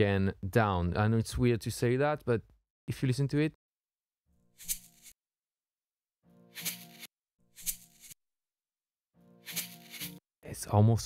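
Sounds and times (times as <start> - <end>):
shaker: 4.6 - 5.1, 6.6 - 8.1, 9.5 - 10.2.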